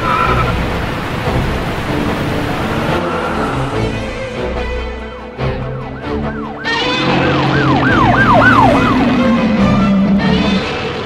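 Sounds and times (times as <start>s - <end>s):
car engine revving: 6.7s - 11.0s.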